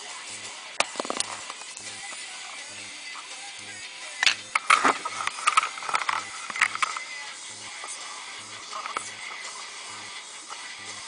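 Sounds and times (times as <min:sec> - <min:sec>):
camera handling clicks: 0:04.2 - 0:07.0
plastic cup rustling: 0:04.6 - 0:07.0.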